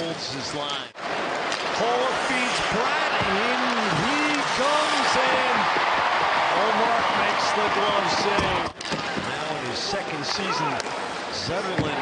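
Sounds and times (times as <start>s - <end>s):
crowd din: 1.0s - 10.1s
hockey sticks and puck knocking: 1.3s - 1.8s
individual shouts: 10.5s - 10.8s.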